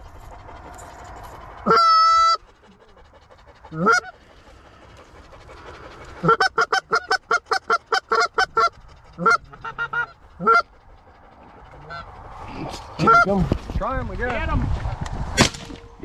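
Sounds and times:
goose honking: 1.6 - 2.4, 3.7 - 4.2, 6.2 - 10.8, 11.6 - 12.1, 13.0 - 13.3.

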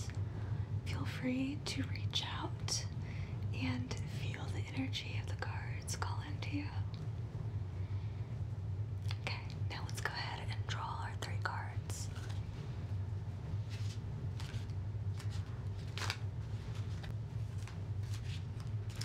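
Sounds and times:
steady low hum: 0.0 - 19.0
soft whispering: 0.8 - 7.1, 9.0 - 12.9
cards tapping and clicking: 13.8 - 19.0.

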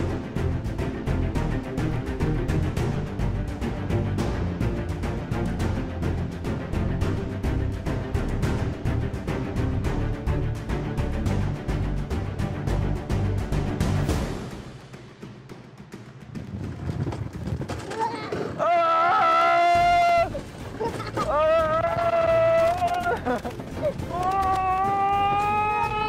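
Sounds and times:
person yelling: 24.1 - 26.0.

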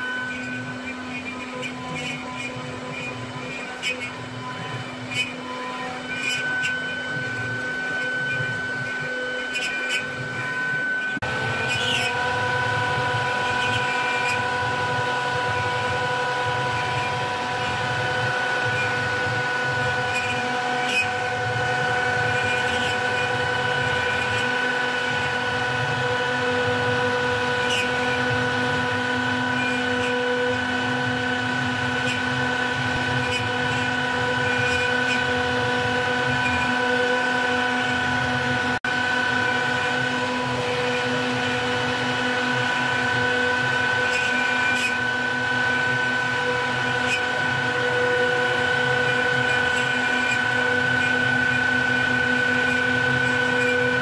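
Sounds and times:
router spindle whine: 0.0 - 54.0.

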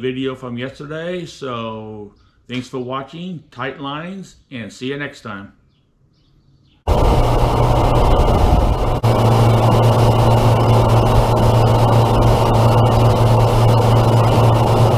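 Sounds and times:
outboard motor drone: 6.9 - 14.9.

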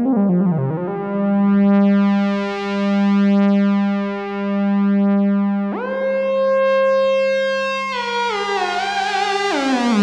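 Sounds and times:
buzzy low synthesizer note: 0.0 - 10.0.

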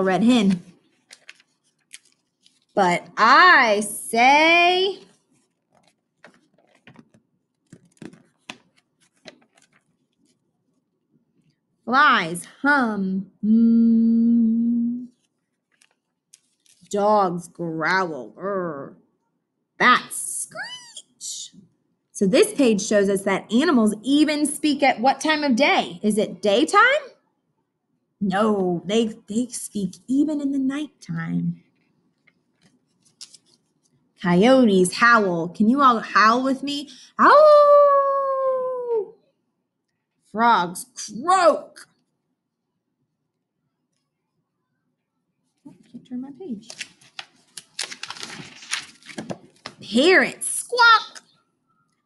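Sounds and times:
paper pages turning: 0.3 - 3.0, 5.0 - 10.5, 15.1 - 17.0, 31.7 - 34.0, 46.6 - 50.0.

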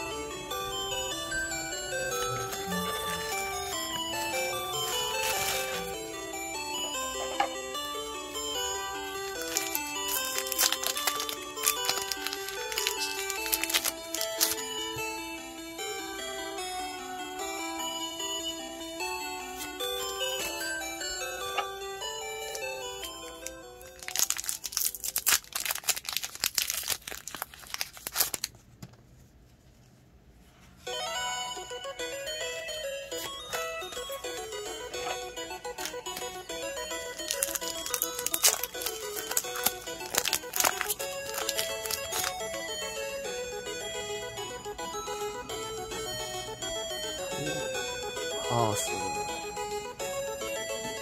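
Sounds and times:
background music: 0.0 - 27.5, 30.8 - 51.0
foil wrapper crinkling and tearing: 4.8 - 5.8, 9.3 - 14.6, 23.4 - 28.6, 37.1 - 42.4.

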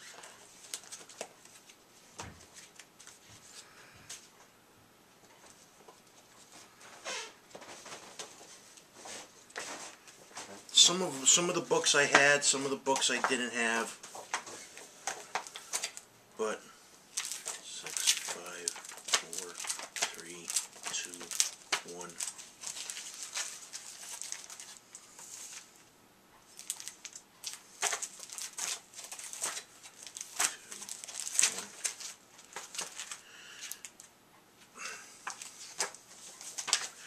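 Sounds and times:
paper rustling: 0.0 - 4.3, 17.2 - 25.8, 26.6 - 34.0, 35.2 - 37.0
plastic bags crinkling: 10.4 - 16.1, 17.1 - 25.8, 26.5 - 34.1, 35.2 - 37.0.

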